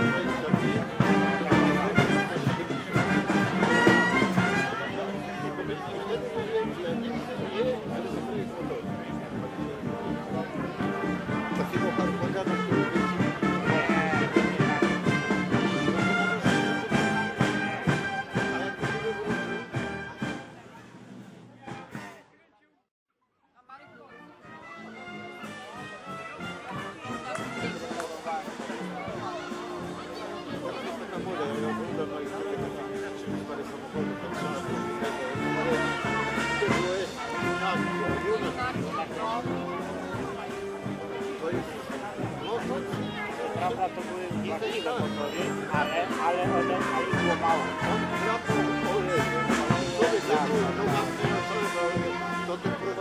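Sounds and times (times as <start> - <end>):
brass band playing: 0.0 - 22.2, 23.9 - 53.0
people talking: 0.0 - 22.8, 23.6 - 53.0.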